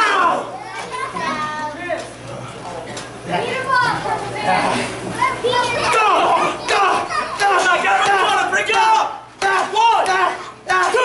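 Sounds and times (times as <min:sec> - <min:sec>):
children shouting and cheering: 0:05.2 - 0:11.0.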